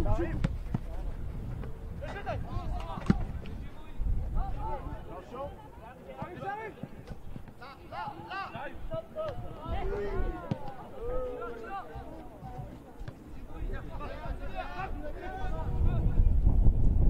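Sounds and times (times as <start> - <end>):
football being kicked: 0.2 - 0.9, 1.5 - 3.6, 8.9 - 10.9
players shouting: 2.0 - 15.8.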